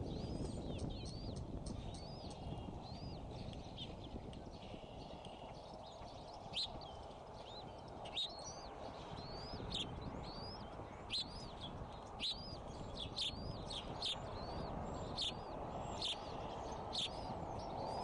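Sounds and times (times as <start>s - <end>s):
eaglets peeping: 0.0s - 18.0s.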